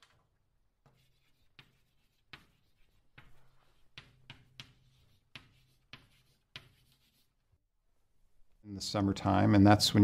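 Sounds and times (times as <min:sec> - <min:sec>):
chalk scratching on a chalkboard: 0:00.8 - 0:07.4.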